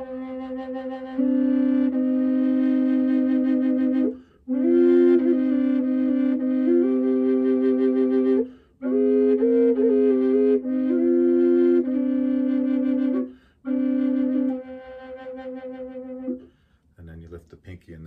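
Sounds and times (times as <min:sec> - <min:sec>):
low flute drone: 0:00.0 - 0:16.5
flute melody: 0:00.0 - 0:16.6.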